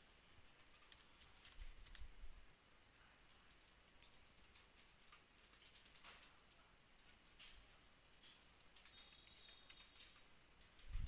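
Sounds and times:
computer mouse ticks and clicks: 0.5 - 2.2, 3.3 - 10.9.

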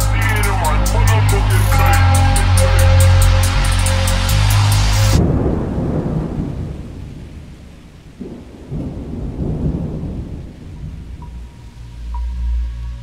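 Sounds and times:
music: 0.0 - 5.2, 11.2 - 13.0
rolling thunder: 1.0 - 12.1.

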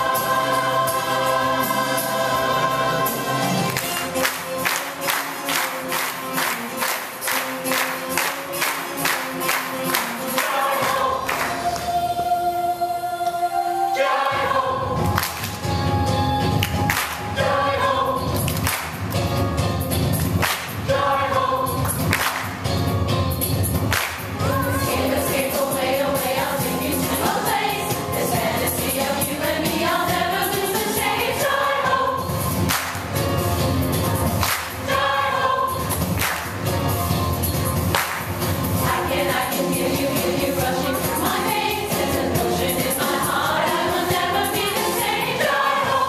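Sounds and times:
choir singing with accompaniment: 0.0 - 19.0, 20.4 - 22.7, 24.0 - 46.0.

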